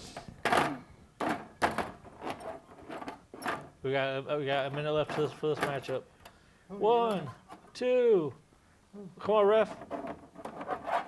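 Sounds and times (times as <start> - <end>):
toy figures knocking and thumping: 0.1 - 2.4.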